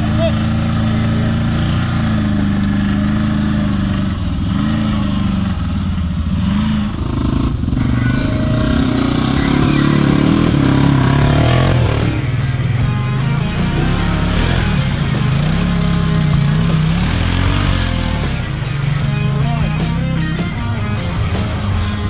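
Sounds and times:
off-road vehicle engines revving: 0:00.0 - 0:22.0
music playing: 0:07.8 - 0:22.0.

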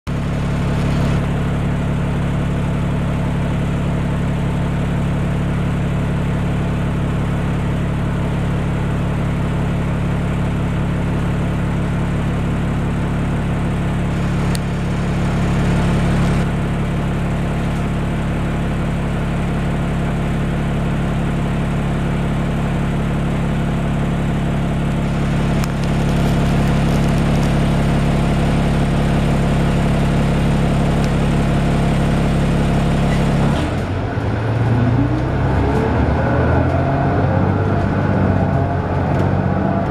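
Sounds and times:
bus diesel engine running: 0:00.1 - 0:39.9.

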